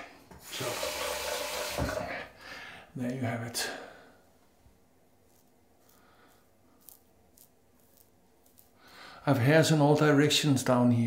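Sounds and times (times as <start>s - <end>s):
razor scraping stubble: 5.2s - 9.0s.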